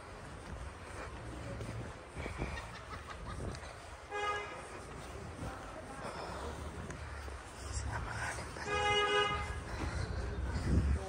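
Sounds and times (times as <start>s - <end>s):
low outdoor bustle: 0.0s - 11.0s.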